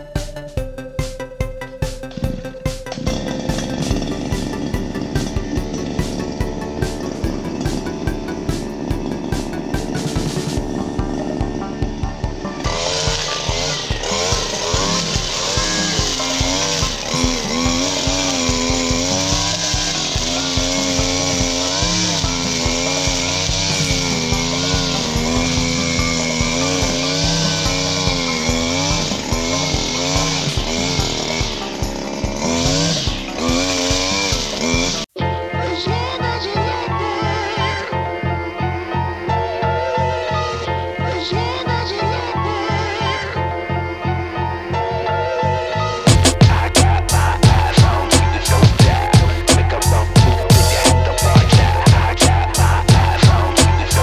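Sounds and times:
background music with a beat: 0.0s - 36.6s, 46.0s - 54.0s
brush cutter engine at high revs: 2.0s - 54.0s
metal blade cutting brush: 2.1s - 11.4s, 12.4s - 35.1s.

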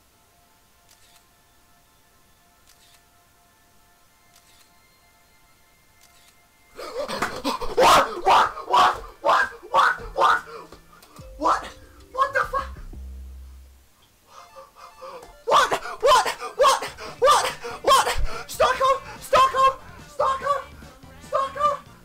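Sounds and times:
soft background music: 0.0s - 22.0s
young man screaming excitedly: 7.6s - 10.7s, 11.4s - 12.8s, 15.4s - 20.7s, 21.3s - 21.9s.

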